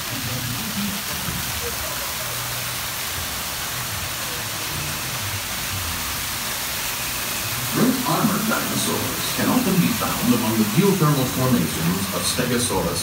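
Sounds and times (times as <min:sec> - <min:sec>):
low indistinct voices: 0:00.0 - 0:06.4, 0:07.6 - 0:13.0
waterfall splashing: 0:00.0 - 0:13.0.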